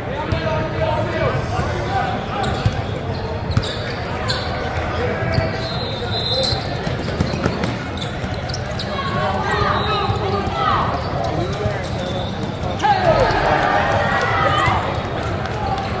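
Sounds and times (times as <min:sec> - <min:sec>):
crowd chatter: 0:00.0 - 0:16.0
sneakers squeaking on court: 0:02.4 - 0:13.5.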